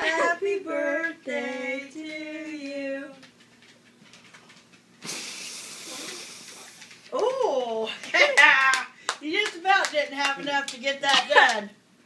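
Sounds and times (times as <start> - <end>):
man blowing out candles: 5.0 - 6.6.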